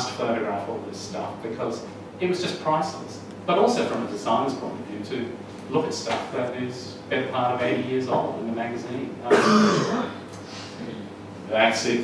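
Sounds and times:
man coughing: 9.3s - 10.2s.

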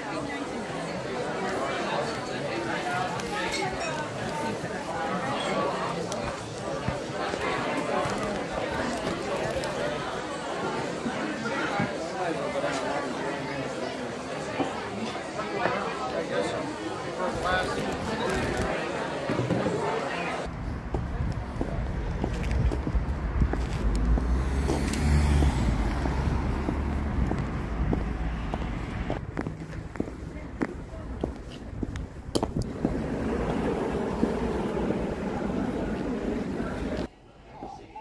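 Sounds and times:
passing traffic: 20.4s - 37.1s
heavy low rumble: 20.5s - 37.1s.

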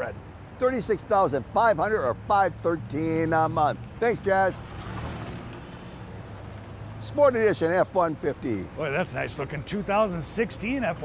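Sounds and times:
pickup truck engine passing: 1.8s - 11.0s.

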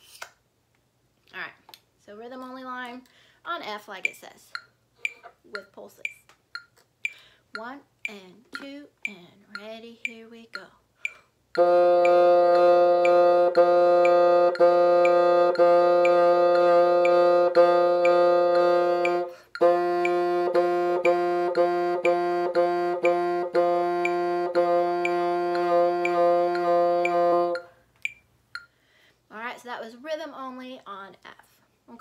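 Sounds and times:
metronome ticking: 3.7s - 28.8s
bassoon repeated note: 11.6s - 27.7s.

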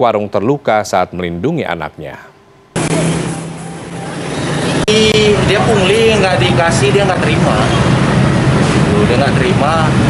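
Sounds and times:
passing traffic: 2.8s - 10.0s.

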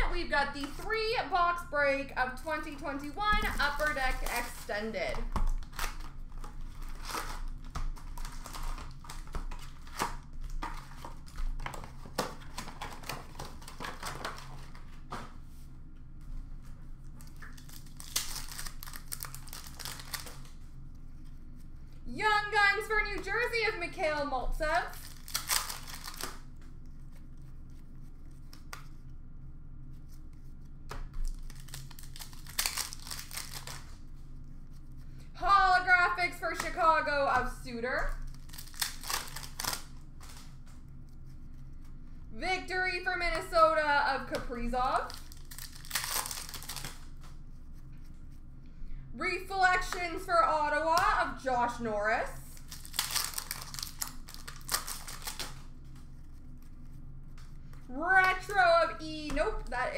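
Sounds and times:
foil packs crinkling: 3.1s - 15.1s, 17.2s - 20.6s, 24.6s - 26.6s, 31.2s - 34.1s, 38.0s - 40.7s, 44.9s - 47.4s, 52.4s - 56.5s.

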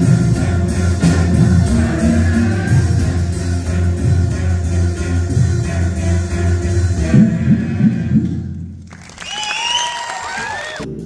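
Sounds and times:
audience applauding: 8.8s - 10.9s.

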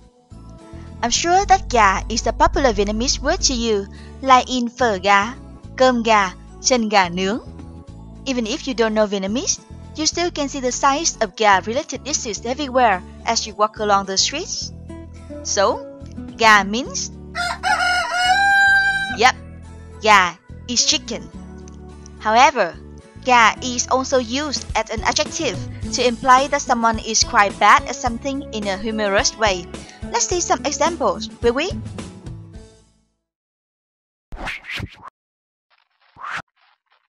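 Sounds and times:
loud rising whoosh: 1.1s - 3.7s
rooster crowing: 17.3s - 19.2s.

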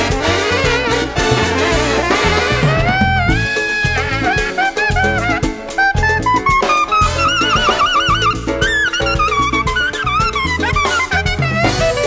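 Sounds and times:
horn shaking a high note: 0.0s - 12.0s
percussion: 0.0s - 12.0s
piano: 0.0s - 12.0s
walking bass: 0.0s - 12.0s.

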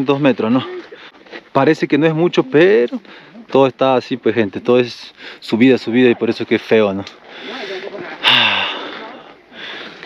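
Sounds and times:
man breathing: 5.2s - 5.4s, 7.2s - 10.0s.

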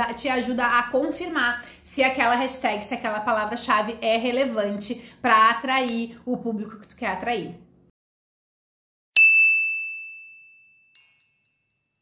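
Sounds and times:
clear ding: 9.2s - 12.0s
high tinkling chime: 9.2s - 12.0s.

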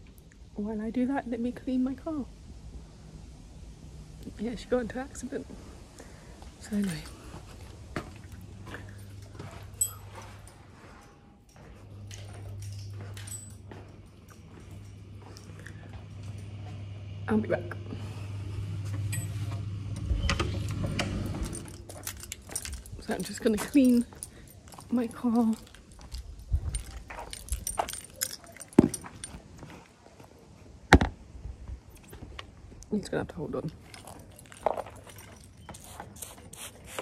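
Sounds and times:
low steady rumble: 0.0s - 29.6s.

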